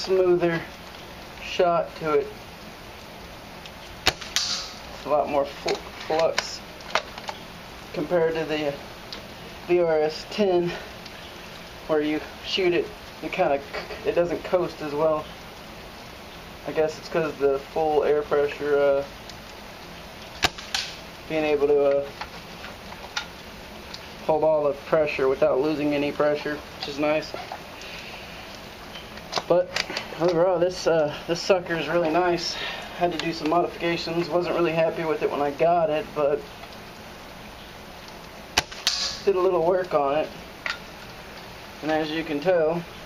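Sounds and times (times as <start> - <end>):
faint hissy sound: 0.0 - 38.5
airsoft rifle shot crack: 4.0 - 4.8, 38.6 - 39.2.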